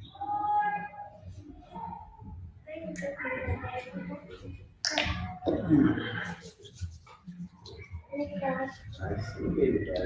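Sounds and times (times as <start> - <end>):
low indistinct voices: 0.0 - 10.0.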